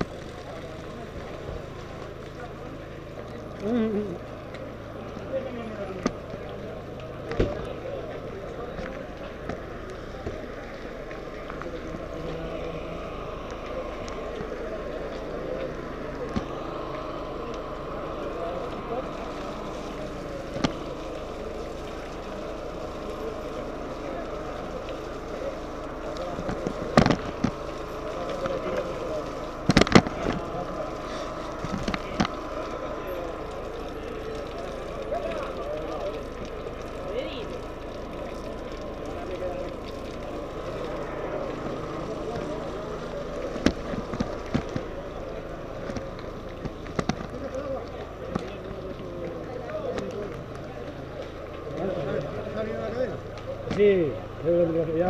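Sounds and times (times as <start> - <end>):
crowd chatter: 0.0 - 55.0.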